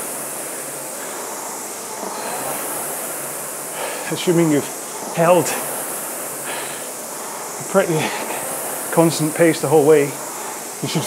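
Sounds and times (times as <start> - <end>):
rowing machine fan whirring: 0.0 - 11.0.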